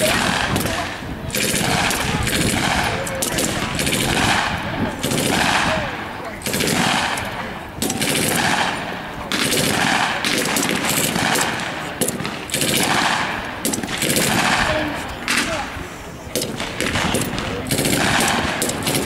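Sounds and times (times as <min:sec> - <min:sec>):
automatic gunfire: 0:00.0 - 0:15.7, 0:16.3 - 0:19.0
rifle shots: 0:00.0 - 0:15.7, 0:16.3 - 0:19.0.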